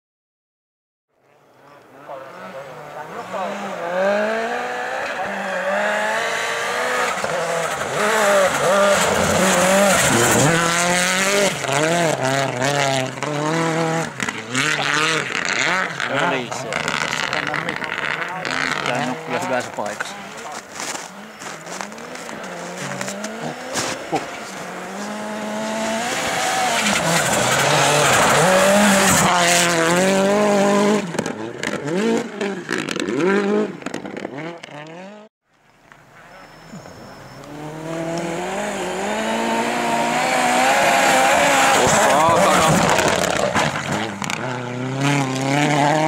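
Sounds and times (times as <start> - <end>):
rally car engine revving: 1.6 - 35.3, 36.2 - 46.0.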